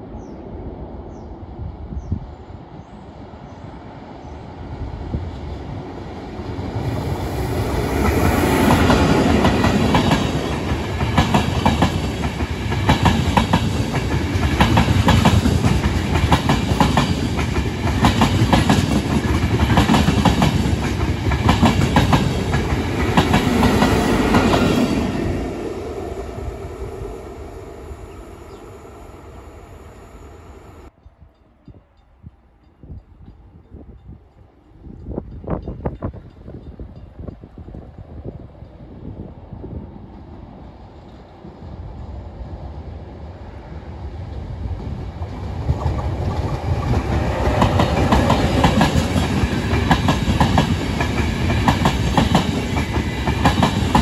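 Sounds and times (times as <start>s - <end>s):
passenger train passing: 0.0s - 54.0s
wheels clacking over rail joints: 45.6s - 54.0s.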